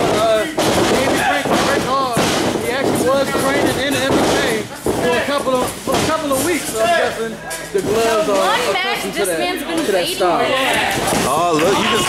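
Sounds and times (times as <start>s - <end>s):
thud: 0.0s - 6.6s, 11.0s - 11.4s
men talking: 0.0s - 12.0s.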